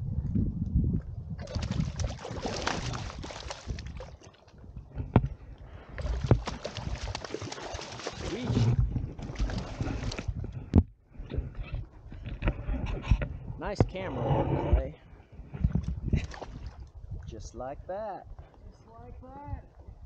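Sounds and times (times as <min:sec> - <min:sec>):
wind rumble on microphone: 0:00.0 - 0:07.3, 0:08.2 - 0:20.0
fish splashing in water: 0:01.4 - 0:04.5, 0:06.0 - 0:10.2.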